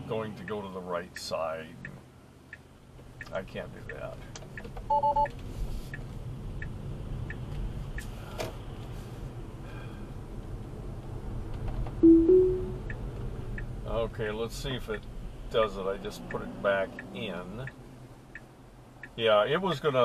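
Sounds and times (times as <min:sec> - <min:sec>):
road rumble: 0:00.0 - 0:12.0, 0:12.6 - 0:20.0
turn signal ticking: 0:00.3 - 0:08.8, 0:10.3 - 0:13.9, 0:16.2 - 0:19.8
short double chime: 0:12.0 - 0:12.8
two-note rising chime: 0:12.0 - 0:12.8.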